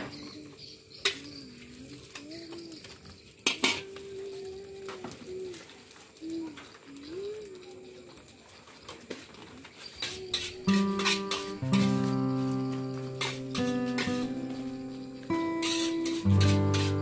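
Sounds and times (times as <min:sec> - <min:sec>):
metal spatula scraping wok: 0:09.9 - 0:17.0.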